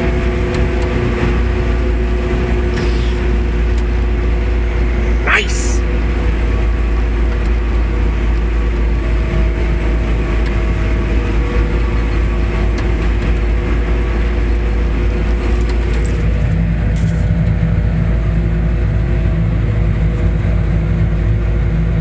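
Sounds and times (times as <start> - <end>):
harvester machine drone: 0.0 - 22.0
low hum: 1.0 - 15.2.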